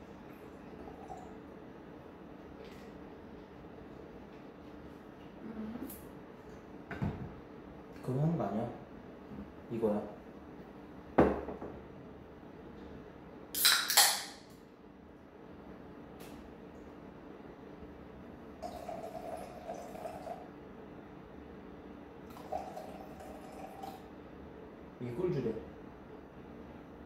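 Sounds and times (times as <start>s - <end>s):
beer pouring into glass: 0.4s - 1.4s, 18.6s - 20.5s, 22.2s - 24.1s
knock on counter: 6.9s - 7.3s, 11.2s - 11.8s
beer can cracked open hissing: 13.6s - 14.4s.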